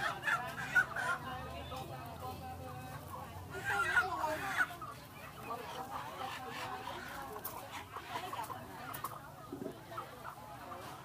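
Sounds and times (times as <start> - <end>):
chickens clucking and squawking: 0.0 - 11.0.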